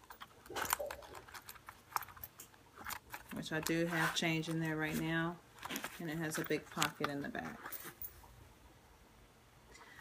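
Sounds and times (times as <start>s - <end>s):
wallet clicks and rustling: 0.0s - 8.1s.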